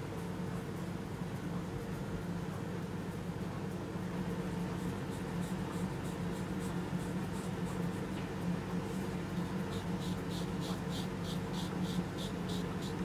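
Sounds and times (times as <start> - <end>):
low room hum: 0.0 - 13.0
razor scraping skin: 4.8 - 8.1, 9.4 - 13.0.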